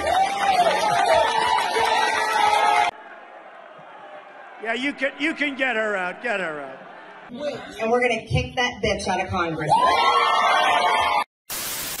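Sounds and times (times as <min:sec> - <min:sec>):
tv static hiss: 0:11.5 - 0:12.0.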